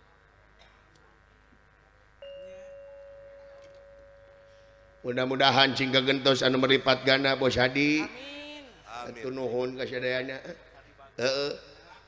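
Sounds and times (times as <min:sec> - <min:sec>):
gamelan note ringing: 0:02.2 - 0:05.2.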